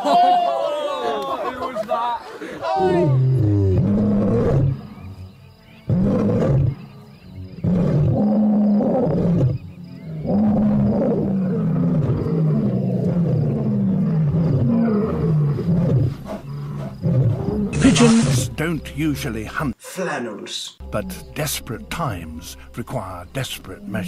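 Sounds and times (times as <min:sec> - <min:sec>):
deep animal roars and grunts: 0:02.8 - 0:17.8.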